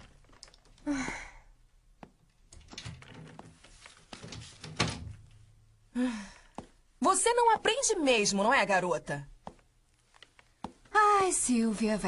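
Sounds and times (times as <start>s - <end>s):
woman sighing: 0.8s - 1.6s, 5.9s - 6.6s.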